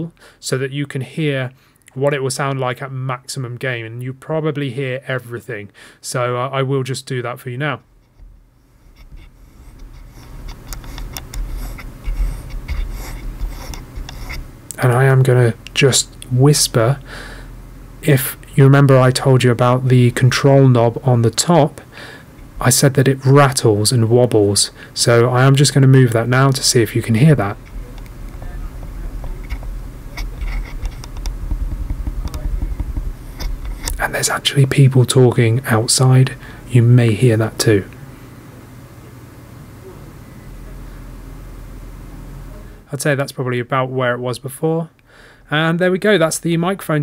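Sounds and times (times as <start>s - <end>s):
room background noise: 0.0s - 47.0s
clicks and rubbing on knob: 27.6s - 34.0s.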